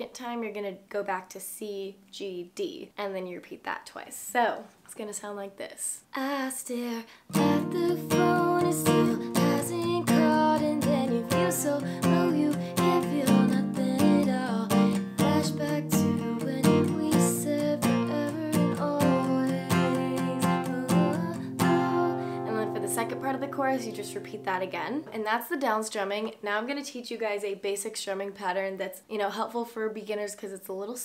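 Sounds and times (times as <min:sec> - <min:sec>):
acoustic guitar strumming: 0:07.3 - 0:25.1.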